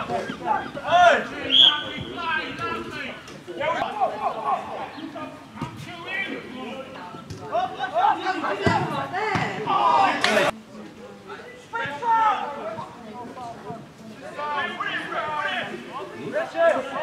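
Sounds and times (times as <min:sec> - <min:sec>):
players shouting: 0:00.0 - 0:10.6, 0:14.3 - 0:17.0.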